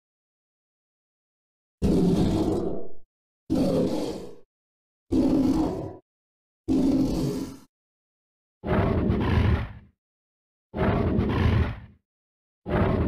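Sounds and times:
monster roar: 1.8s - 2.7s, 3.5s - 4.4s, 5.1s - 6.0s, 6.7s - 7.7s, 8.6s - 9.9s, 10.8s - 12.0s, 12.7s - 13.0s.

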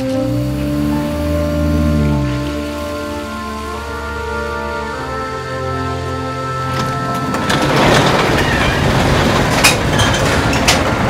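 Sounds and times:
music tones: 0.0s - 9.6s
car wash machinery rushing: 0.0s - 11.0s.

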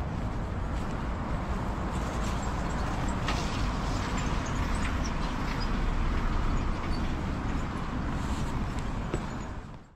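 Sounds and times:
city traffic low rumble: 0.0s - 9.9s.

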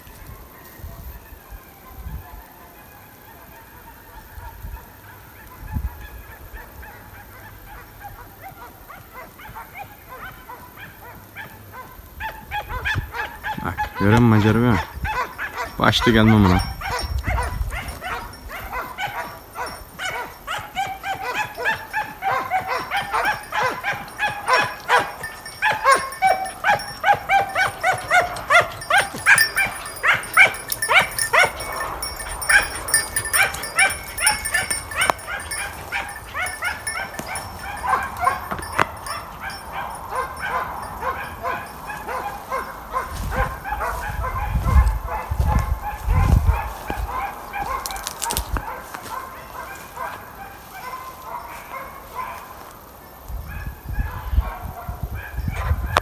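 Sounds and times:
hounds baying and yelping: 0.0s - 56.0s.

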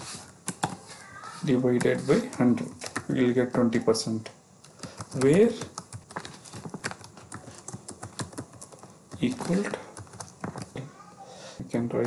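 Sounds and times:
keyboard typing: 0.4s - 0.8s, 4.6s - 10.8s.

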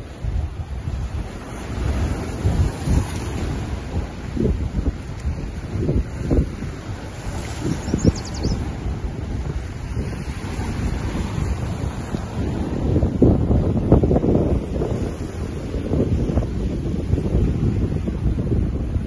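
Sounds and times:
waves splashing against boulders: 0.0s - 19.0s
wind buffeting microphone: 0.0s - 19.0s.

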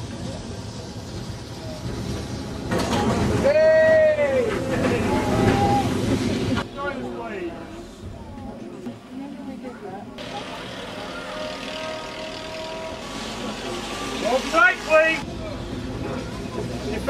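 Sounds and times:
tram running on rails: 0.0s - 17.0s.

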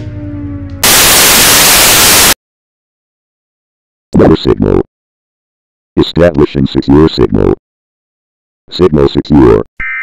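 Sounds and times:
loud white-noise static: 0.8s - 2.4s.

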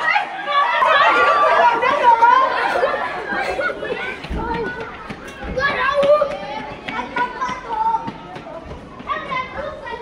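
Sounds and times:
young women talking and calling out: 0.0s - 10.0s.

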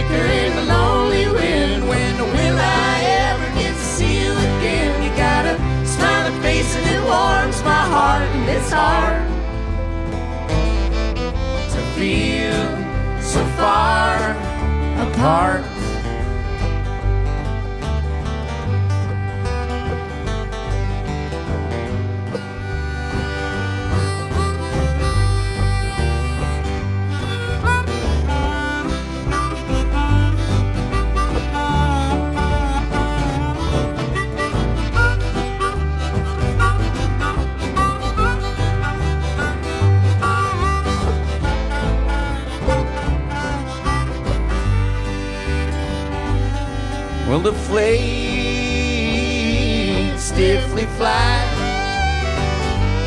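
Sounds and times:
bass line: 0.0s - 53.0s
bending lead melody: 0.0s - 53.0s
live country band playing: 0.0s - 53.0s.

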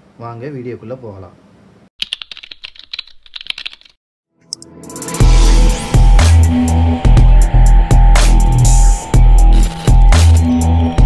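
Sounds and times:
rapid keyboard typing: 2.0s - 4.0s
intro music: 4.4s - 11.0s
rising swell: 4.6s - 11.0s.

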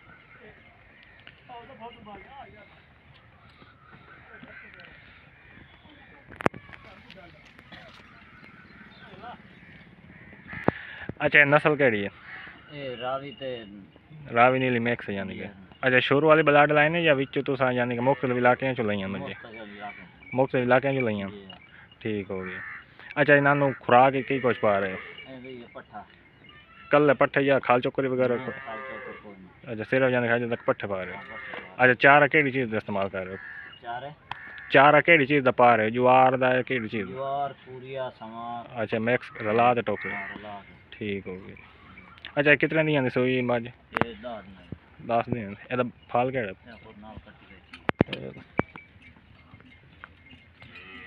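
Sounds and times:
faint bird calls: 0.0s - 14.4s, 15.5s - 35.0s, 36.4s - 51.0s
farmyard background noise: 0.0s - 51.0s.

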